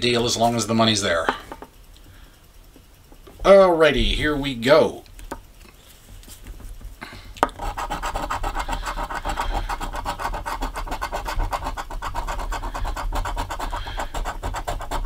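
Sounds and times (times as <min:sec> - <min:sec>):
coin scratching lottery ticket: 0:07.5 - 0:15.0.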